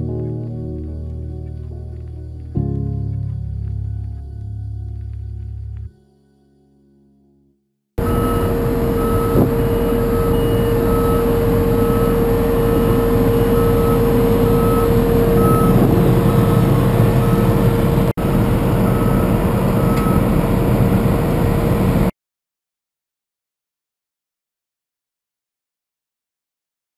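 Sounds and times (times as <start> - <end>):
reversing alarm beeps: 8.0 - 20.4
combine harvester engine running: 8.0 - 22.1
constant machine whine: 8.0 - 22.1.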